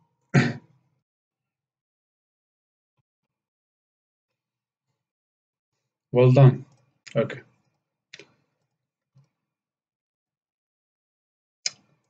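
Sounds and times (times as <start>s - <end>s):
man clearing his throat: 0.4s - 0.6s.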